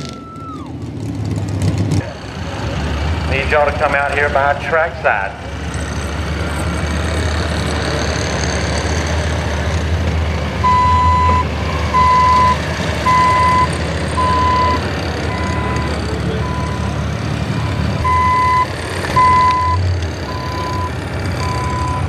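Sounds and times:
engines idling: 0:00.0 - 0:22.0
reversing alarm beeping: 0:10.6 - 0:16.9, 0:17.6 - 0:22.0.

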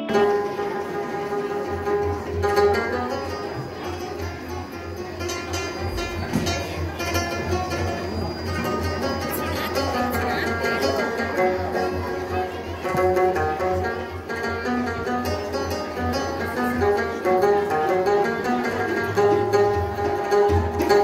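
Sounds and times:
rubab plucking a melody: 0:00.0 - 0:21.0
goblet hand drum rhythm: 0:00.2 - 0:21.0.

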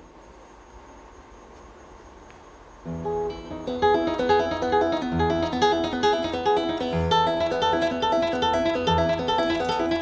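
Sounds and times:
classical guitar fingerstyle: 0:02.9 - 0:10.0.

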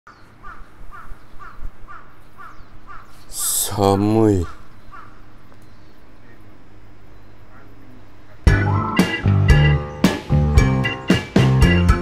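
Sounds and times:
bird calling short calls: 0:00.3 - 0:05.4.

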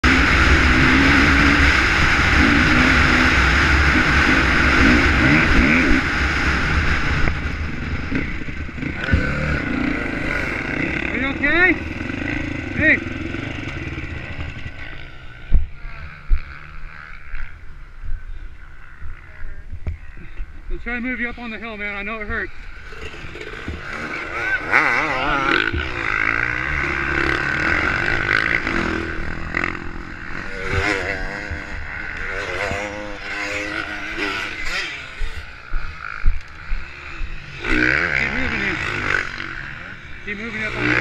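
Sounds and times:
dirt bike engine running: 0:00.0 - 0:41.0.

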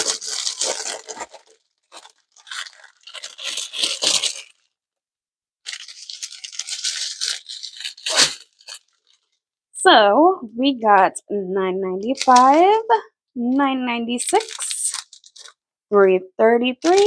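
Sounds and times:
plastic packaging crinkling: 0:00.0 - 0:04.8, 0:05.6 - 0:09.4, 0:12.0 - 0:12.8, 0:14.2 - 0:15.6.

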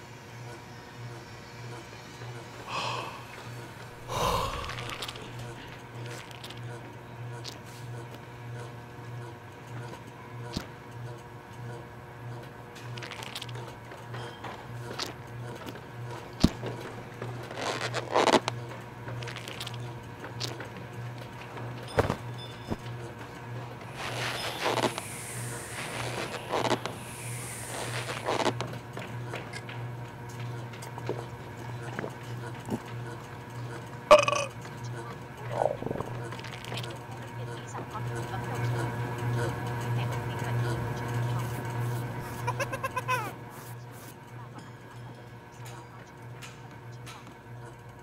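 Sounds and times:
low hum: 0:02.6 - 0:06.5, 0:23.8 - 0:28.7
wordless vocal sounds: 0:02.7 - 0:05.6, 0:23.8 - 0:28.5.

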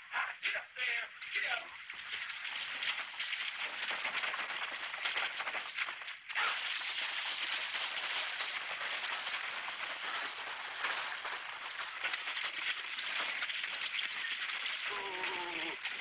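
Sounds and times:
wagon wheels rattling: 0:02.0 - 0:16.0.

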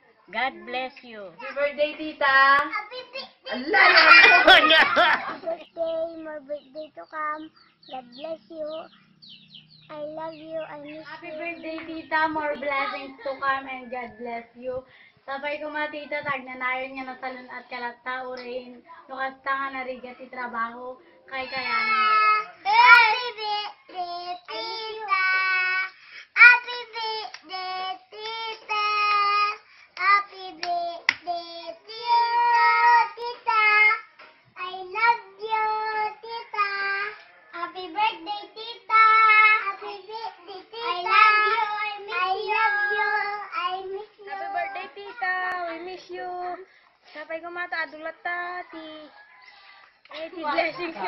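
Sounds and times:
child singing: 0:02.7 - 0:08.9, 0:09.9 - 0:13.2, 0:21.4 - 0:45.6.

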